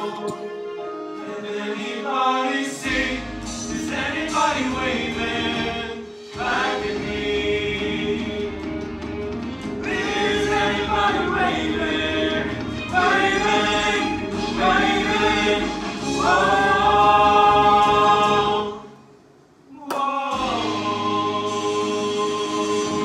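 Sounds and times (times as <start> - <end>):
male vocal group singing harmony: 1.1 - 9.0, 9.7 - 19.0, 19.7 - 23.0.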